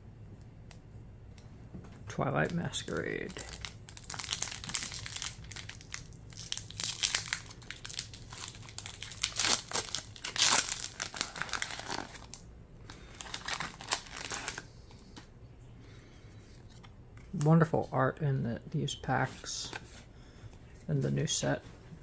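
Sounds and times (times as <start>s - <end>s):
foil wrapper tearing and crinkling: 2.9s - 12.4s, 13.0s - 14.6s.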